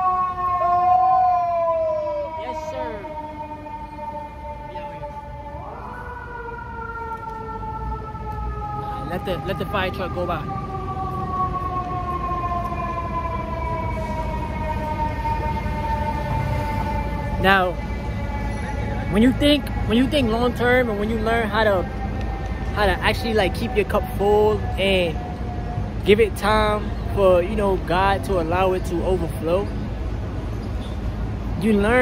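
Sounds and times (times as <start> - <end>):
fire truck siren wailing: 0.0 - 30.5.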